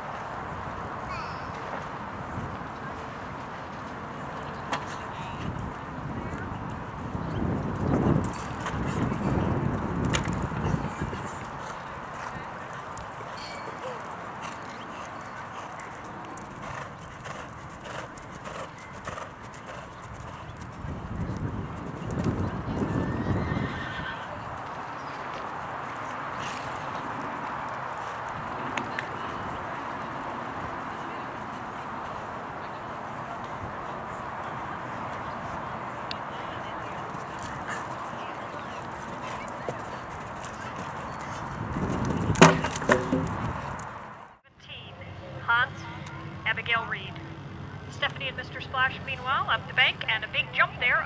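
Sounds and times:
faint voices: 1.0 - 51.0
horse hoofbeats on sand: 7.6 - 23.5.

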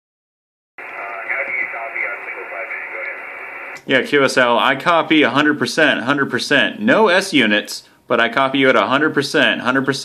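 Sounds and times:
voice over radio speaker: 0.8 - 3.8
radio band hiss: 0.8 - 4.0.

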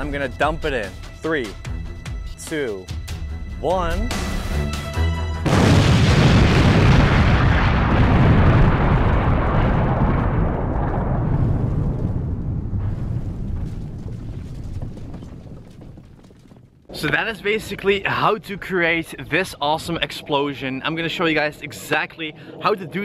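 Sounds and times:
long deep rumble: 5.4 - 15.8
explosion boom: 5.4 - 16.1.

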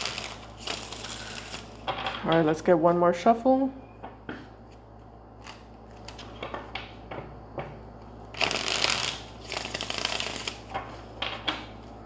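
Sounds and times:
cards shuffled by hand: 8.4 - 11.0.

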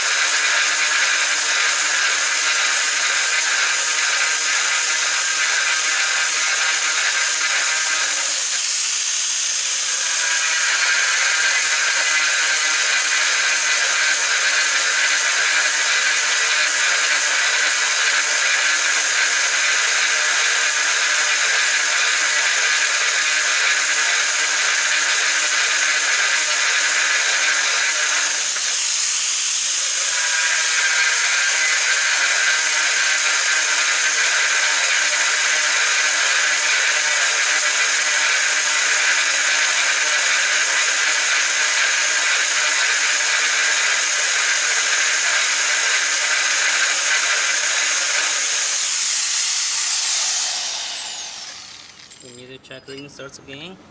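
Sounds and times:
angle grinder grinding tile: 0.0 - 52.6.

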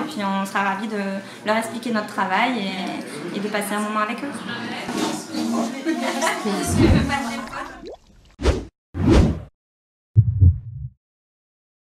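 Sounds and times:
low boom: 10.2 - 11.0
low double thump: 10.2 - 11.0.

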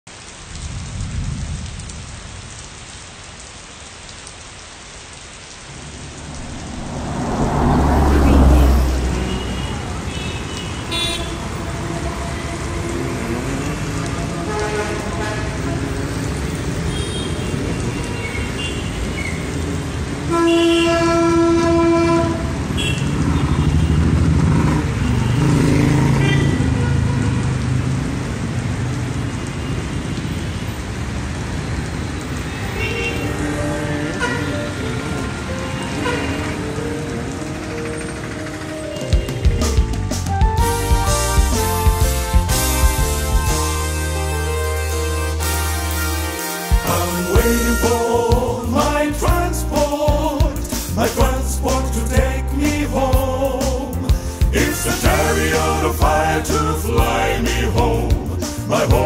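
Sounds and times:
rain hissing on road: 0.0 - 59.0
vehicles passing: 5.4 - 20.3, 21.6 - 59.0
low rumble: 5.7 - 9.8
vehicle horn: 6.5 - 13.5, 14.4 - 16.1, 20.3 - 24.0, 32.5 - 33.5, 35.8 - 36.6, 40.6 - 48.2.

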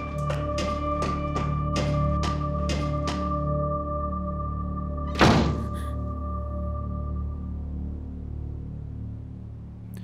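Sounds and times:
tense music with drone: 0.0 - 10.0.

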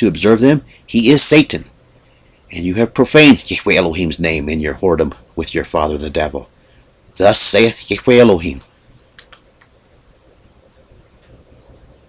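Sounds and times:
low steady hiss: 0.0 - 12.0.

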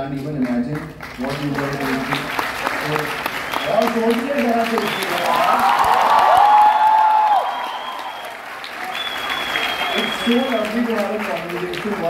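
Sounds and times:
audience applauding and cheering: 0.4 - 12.0
shrill whistle: 3.4 - 4.0, 7.2 - 10.8.

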